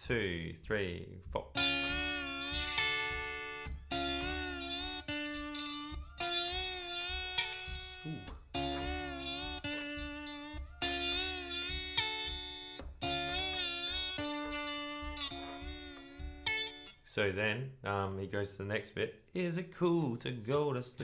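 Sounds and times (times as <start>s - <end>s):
slide electric guitar riff: 1.5s - 17.0s.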